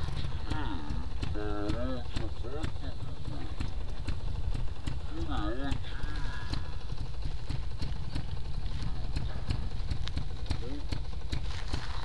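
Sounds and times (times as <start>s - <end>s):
motorcycle engine idling unevenly: 0.0s - 12.0s.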